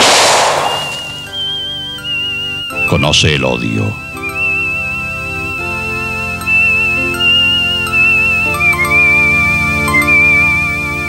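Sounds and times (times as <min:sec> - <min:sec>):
gunshot: 0:00.0 - 0:01.3
background music sustained chords: 0:00.0 - 0:11.0
high wavering whistle-like tone: 0:00.0 - 0:11.0.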